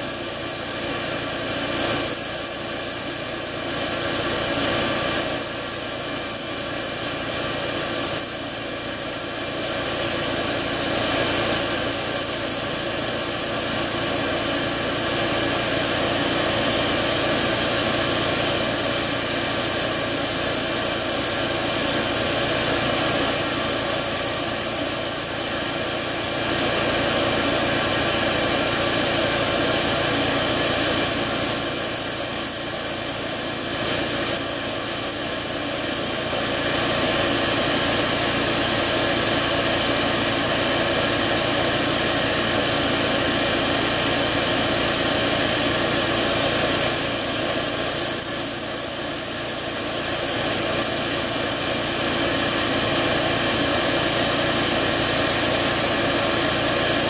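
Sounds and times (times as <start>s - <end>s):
rotary carving drill whining: 0.0s - 57.0s.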